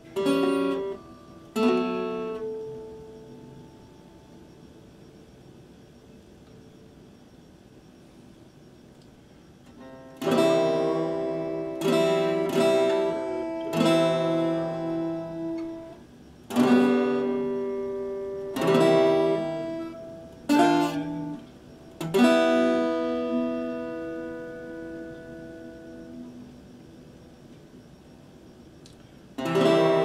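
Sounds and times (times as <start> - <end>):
acoustic guitar chords strummed: 0.0 - 5.0, 9.7 - 27.2, 29.4 - 30.0.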